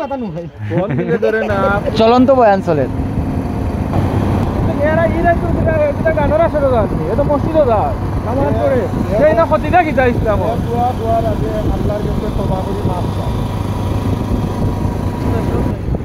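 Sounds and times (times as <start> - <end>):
men talking loudly: 0.0 - 3.3, 4.0 - 15.8
road rumble: 0.0 - 16.0
motorcycle engine running: 1.6 - 16.0.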